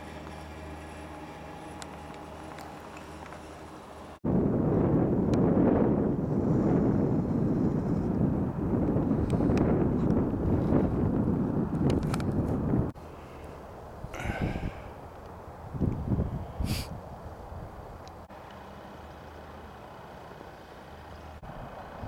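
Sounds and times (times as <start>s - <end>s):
faint steady hum: 0.0s - 9.7s
wind on microphone: 4.2s - 13.0s, 14.0s - 15.0s, 15.6s - 18.0s.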